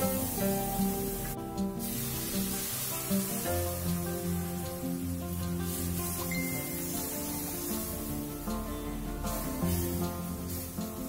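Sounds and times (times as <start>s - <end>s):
background music: 0.0s - 11.0s
spices frying in oil: 0.0s - 11.0s.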